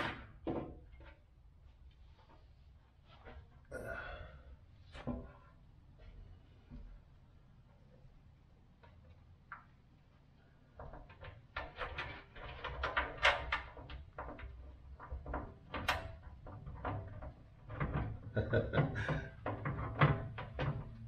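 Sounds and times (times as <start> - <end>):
metal fender knocking and scraping: 10.7 - 21.0.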